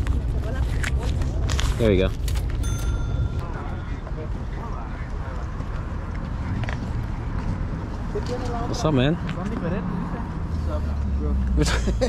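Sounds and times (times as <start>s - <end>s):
high-pitched tone: 2.6s - 4.5s.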